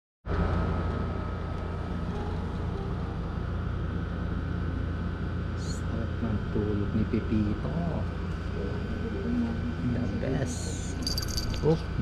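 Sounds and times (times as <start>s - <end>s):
faint high whine: 0.3s - 12.0s.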